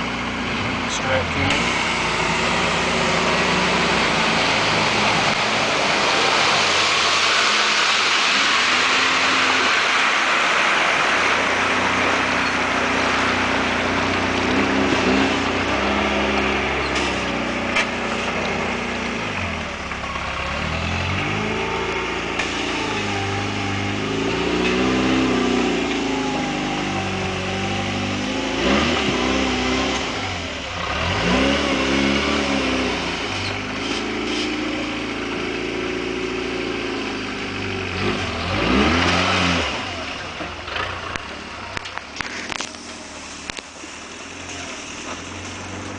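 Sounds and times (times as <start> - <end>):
buggy engine revving: 0.0 - 45.9.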